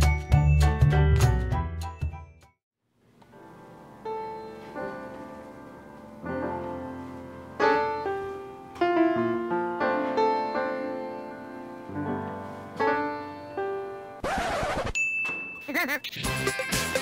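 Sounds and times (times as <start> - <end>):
piano chords and notes: 0.0 - 2.4, 3.3 - 14.2.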